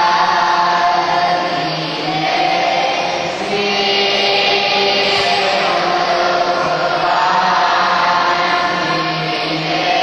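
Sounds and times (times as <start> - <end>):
group chanting in unison: 0.0 - 10.0.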